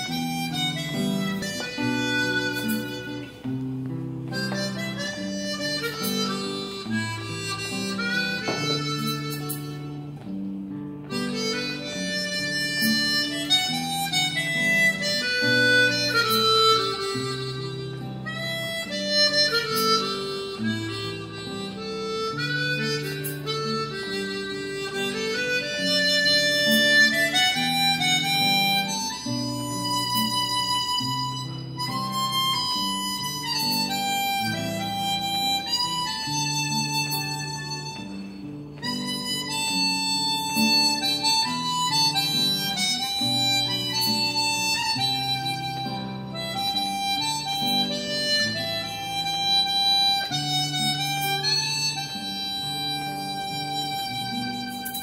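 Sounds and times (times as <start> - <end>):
acoustic guitar strumming: 0.0 - 55.0
harmonica melody: 0.0 - 55.0.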